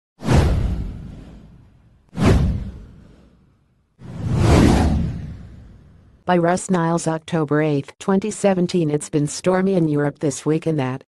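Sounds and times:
whoosh sound effects: 2.2s - 6.0s.

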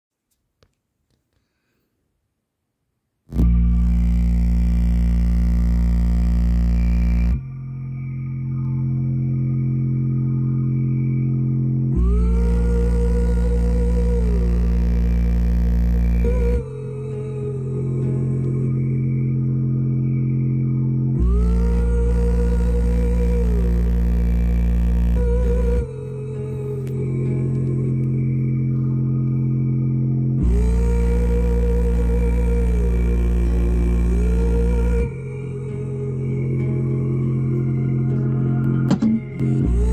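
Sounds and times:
bass-heavy music from speaker: 3.3s - 39.9s.

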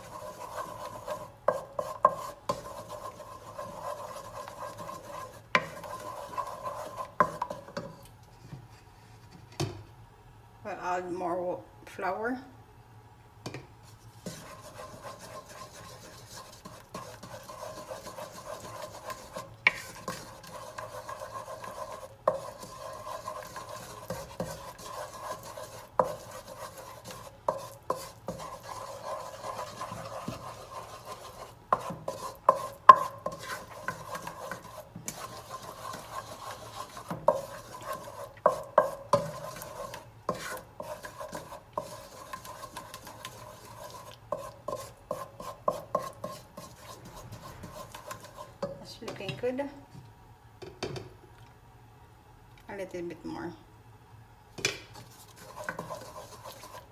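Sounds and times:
butter sizzling: 0.0s - 8.1s, 14.0s - 48.8s, 54.9s - 56.9s
wooden spoon scraping saucepan: 0.0s - 9.3s, 13.8s - 49.6s, 54.9s - 56.9s
spoon tapping pan: 31.8s - 36.0s.

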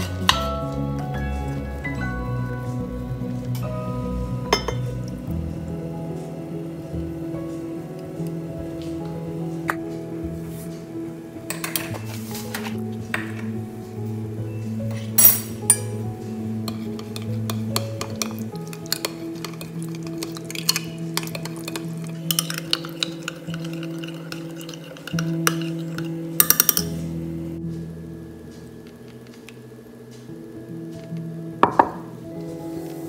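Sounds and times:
background music: 0.0s - 33.0s
utensil clinking glass cup: 4.5s - 4.9s, 15.2s - 16.0s, 16.7s - 27.0s
container knocks on surface: 31.6s - 32.1s.

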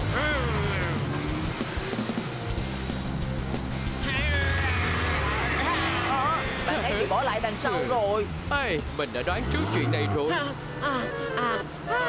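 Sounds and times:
vehicle sound effects: 0.0s - 12.0s.

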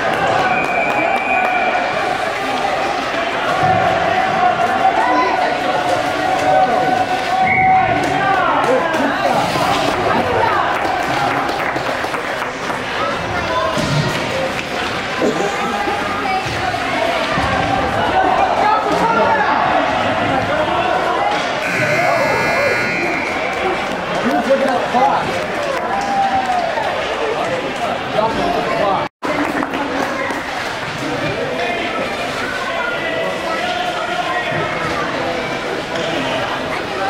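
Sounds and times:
voices and chatter in arena: 0.0s - 37.0s
harsh buzz: 21.6s - 23.6s
ice rink buzzer tone: 21.6s - 23.8s.

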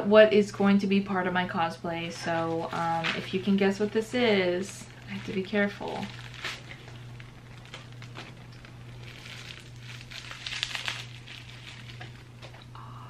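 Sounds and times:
low hum: 0.0s - 13.0s
bubble wrap crackling: 2.2s - 12.7s.

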